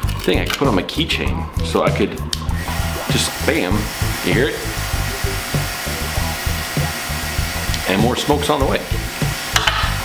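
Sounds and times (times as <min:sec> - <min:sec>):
smoke machine hissing: 0:02.4 - 0:10.0.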